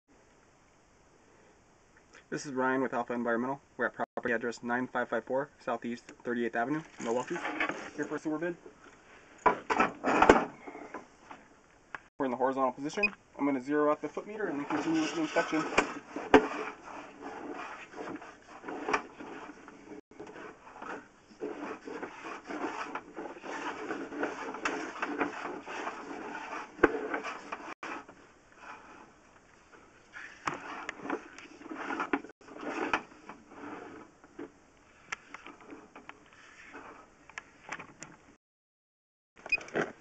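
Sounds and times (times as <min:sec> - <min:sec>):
cable rattling and scraping in pipe: 0:06.2 - 0:11.4, 0:14.0 - 0:34.5.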